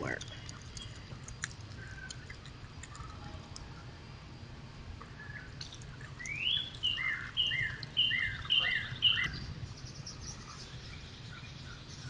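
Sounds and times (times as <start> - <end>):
songbird singing whistled song: 5.1 - 12.0.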